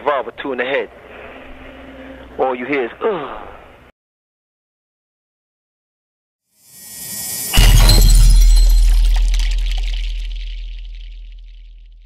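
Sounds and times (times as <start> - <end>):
deep boom with crash: 7.2 - 12.0.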